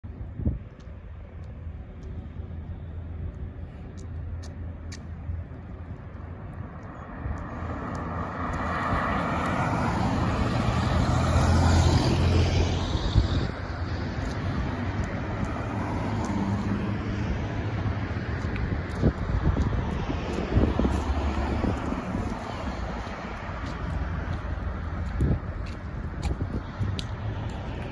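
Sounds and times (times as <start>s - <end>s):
bus engine rumble: 0.1s - 27.9s.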